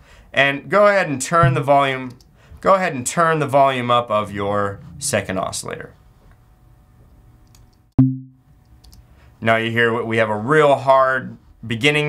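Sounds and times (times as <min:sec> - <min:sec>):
synthesized kick drum: 0:01.4 - 0:01.7.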